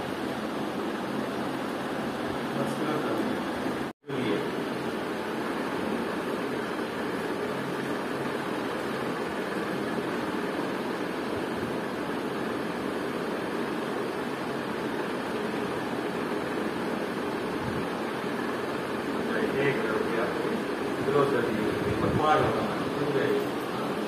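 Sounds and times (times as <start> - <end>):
steady background hiss: 0.0 - 24.0.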